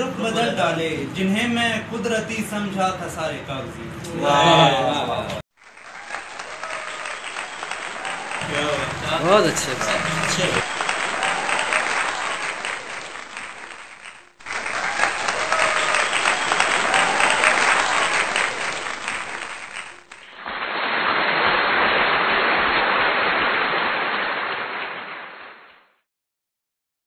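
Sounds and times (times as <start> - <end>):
audience applause: 5.6 - 25.9.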